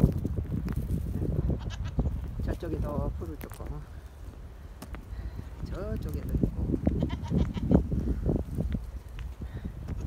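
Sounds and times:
steady low rumble: 0.0s - 10.0s.

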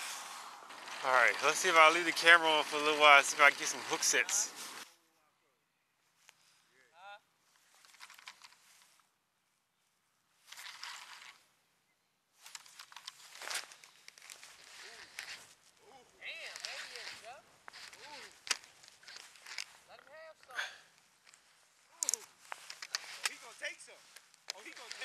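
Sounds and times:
distant voices: 0.0s - 4.6s
camera being handled: 7.8s - 8.9s, 12.4s - 15.6s, 16.5s - 19.9s, 21.0s - 23.4s, 24.0s - 25.0s.

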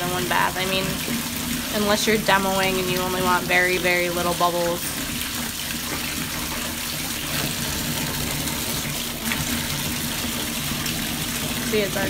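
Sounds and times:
bathtub faucet running: 0.0s - 12.0s.

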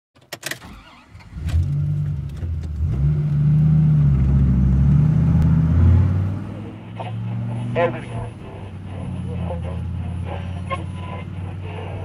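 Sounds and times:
car engine cranking and running: 0.2s - 12.0s.

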